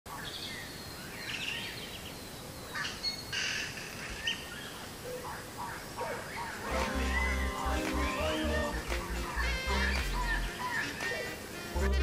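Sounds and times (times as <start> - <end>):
birds chirping: 0.1 - 12.0
outdoor background hiss: 0.1 - 12.0.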